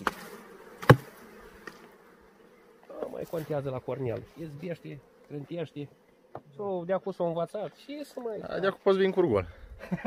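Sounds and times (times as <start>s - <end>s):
bees buzzing: 0.0s - 9.1s
hive tool knock: 0.8s - 1.8s.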